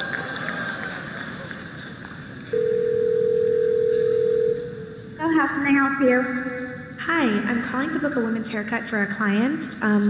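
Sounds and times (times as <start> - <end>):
telephone ringback tone: 2.5 - 5.0.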